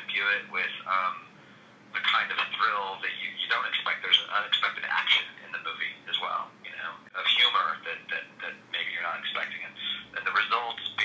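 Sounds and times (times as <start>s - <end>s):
person talking over phone line: 0.0s - 1.3s, 2.0s - 11.0s.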